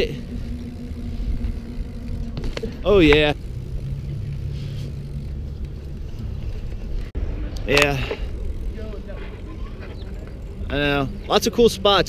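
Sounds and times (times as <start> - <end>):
bike tyres on concrete: 0.1 - 11.8.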